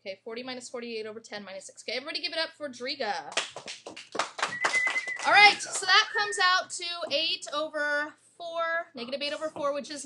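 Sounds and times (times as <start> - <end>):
students clapping: 3.3 - 6.1.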